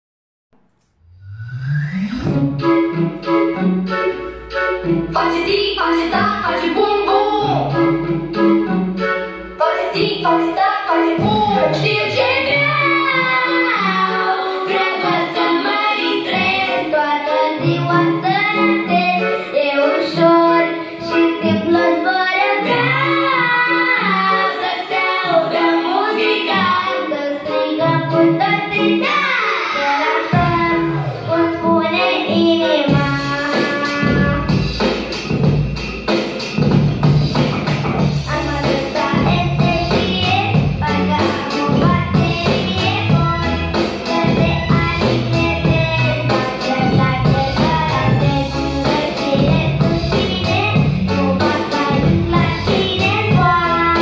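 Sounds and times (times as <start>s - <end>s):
pop backing track: 1.5s - 54.0s
boy singing into a microphone: 5.2s - 7.9s, 9.6s - 34.7s, 38.2s - 54.0s.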